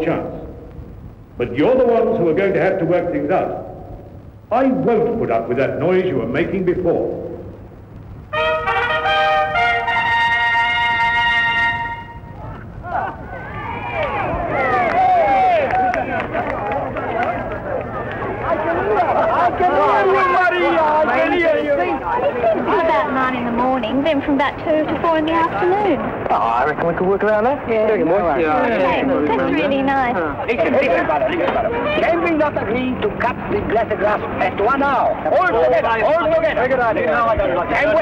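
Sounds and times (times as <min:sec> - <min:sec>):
people talking: 0:01.4 - 0:03.7, 0:04.5 - 0:07.2, 0:15.6 - 0:38.0
trumpet fanfare: 0:08.3 - 0:12.3.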